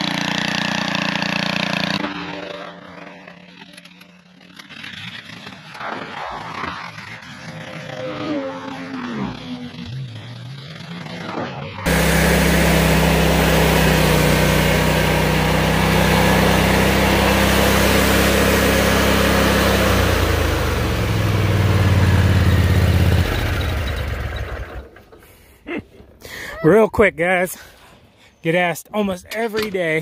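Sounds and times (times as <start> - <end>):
mower engine running: 0.0 - 5.5, 7.2 - 25.5.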